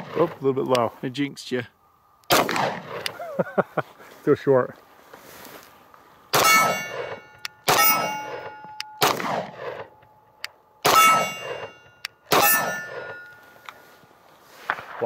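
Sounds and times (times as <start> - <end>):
pistol shots with metallic ring: 6.3 - 13.8.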